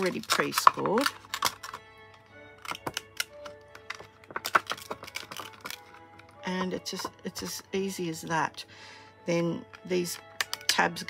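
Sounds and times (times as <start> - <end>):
plastic box crackling and clicking: 0.0 - 6.4, 9.7 - 10.8
quiet background music: 0.0 - 11.0.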